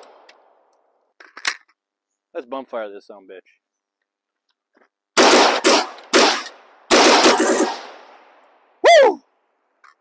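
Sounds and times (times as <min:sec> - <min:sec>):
rifle shot echo: 0:05.2 - 0:08.1.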